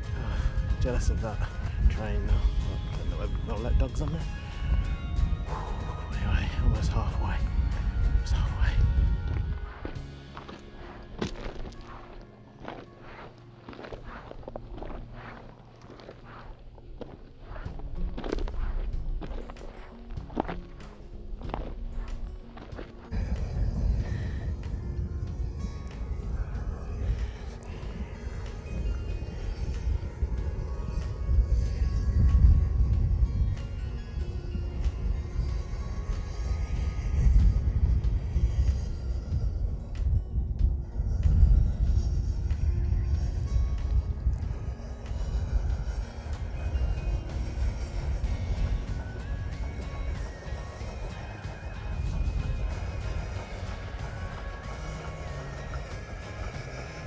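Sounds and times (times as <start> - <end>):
footsteps on gravel: 8.3 - 24.3
music with heavy bass: 22.9 - 57.0.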